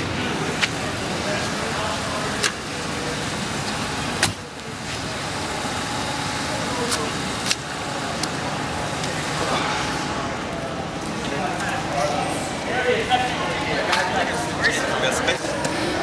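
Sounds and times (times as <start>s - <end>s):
indistinct voices: 0.0s - 16.0s
motor vehicle noise: 0.0s - 16.0s.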